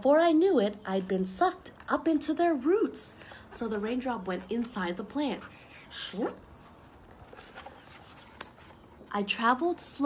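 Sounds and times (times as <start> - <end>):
book pages turning: 3.5 - 9.4.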